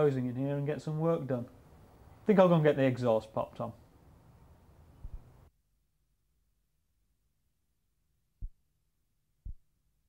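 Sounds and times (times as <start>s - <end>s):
soft low thump: 5.0s - 5.3s.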